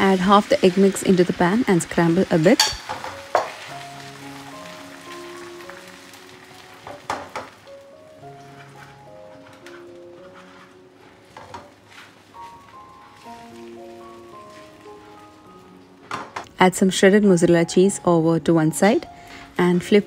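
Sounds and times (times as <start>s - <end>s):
egg sizzling in hot oil: 0.0s - 16.2s
soft slow background music: 0.0s - 20.0s.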